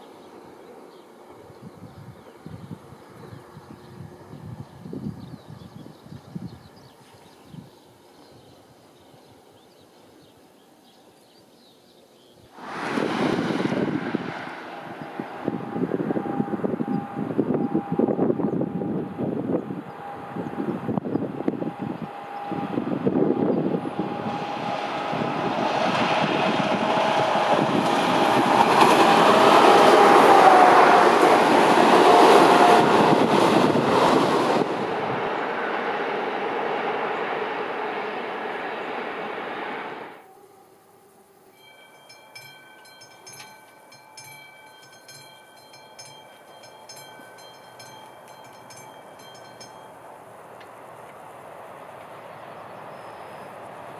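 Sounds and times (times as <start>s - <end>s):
diesel train passing: 0.0s - 10.8s, 12.5s - 40.8s, 41.4s - 53.9s
level crossing bell ringing: 41.6s - 50.2s.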